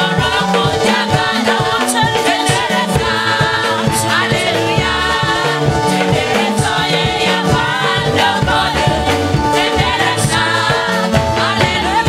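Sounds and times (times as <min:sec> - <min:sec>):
instrumental backing with beat: 0:00.0 - 0:12.0
lead singer and choir singing: 0:00.0 - 0:12.0.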